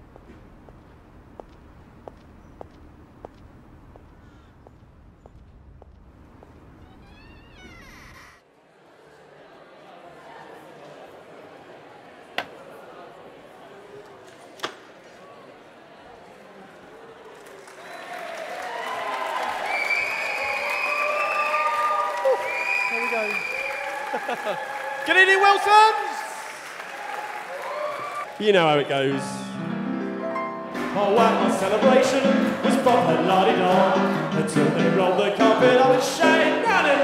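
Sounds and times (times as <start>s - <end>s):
hard-soled footsteps on pavement: 0.0s - 7.8s
faint low outdoor rumble: 0.0s - 8.4s
audience applauding: 17.1s - 29.2s.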